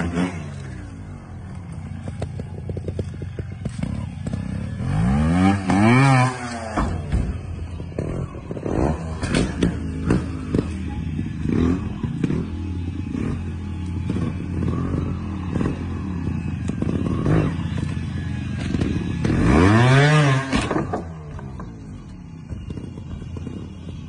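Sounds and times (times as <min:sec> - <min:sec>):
motorcycle engine revving: 0:00.0 - 0:24.0
motorcycle clattering on landing: 0:05.6 - 0:10.8.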